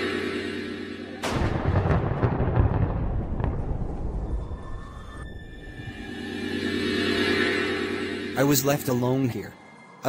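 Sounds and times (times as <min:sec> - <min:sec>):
loud boom with rumbling tail: 0:01.2 - 0:05.6.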